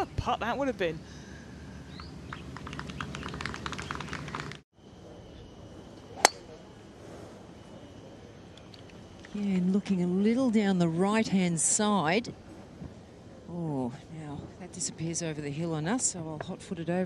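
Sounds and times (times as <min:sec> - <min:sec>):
spectators clapping: 0:02.4 - 0:04.6
golf club striking ball: 0:06.2 - 0:06.5.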